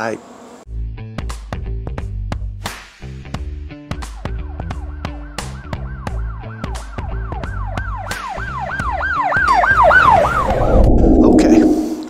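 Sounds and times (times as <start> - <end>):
siren sound effect: 8.4 - 12.0.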